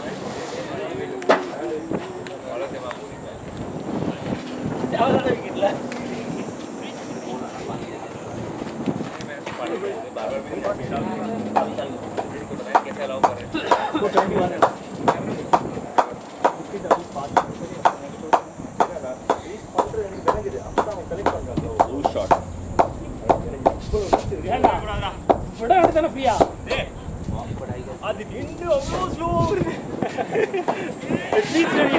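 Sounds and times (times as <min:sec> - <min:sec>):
distant voices chattering: 0:00.0 - 0:31.9
hand clapping: 0:11.4 - 0:26.6.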